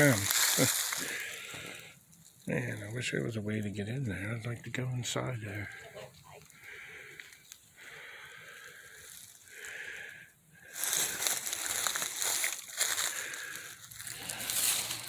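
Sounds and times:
footsteps crunching dry leaves: 0.0 - 1.8, 8.7 - 9.8, 10.7 - 15.0.

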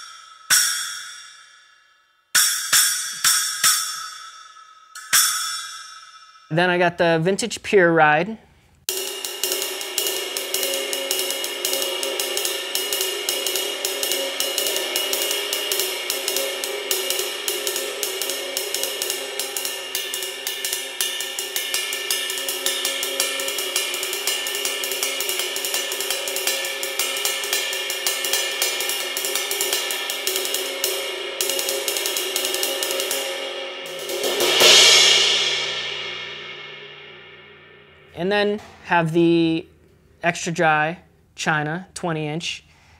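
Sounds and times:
ride cymbal played with drumstick: 0.0 - 6.5, 8.9 - 39.4.

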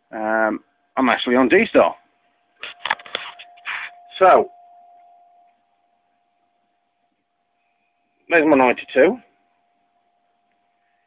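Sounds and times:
faint steady whine: 0.0 - 11.0
phone handling clicks and knocks: 2.6 - 3.6.

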